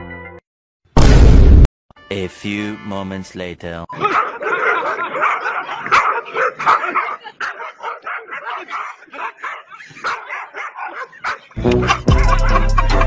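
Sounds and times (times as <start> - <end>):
small dogs barking and yipping: 4.0 - 13.0.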